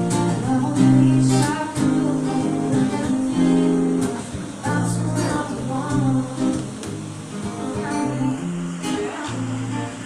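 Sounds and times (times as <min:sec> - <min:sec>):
acoustic guitar strumming: 0:00.0 - 0:10.0
woman singing: 0:00.0 - 0:10.0.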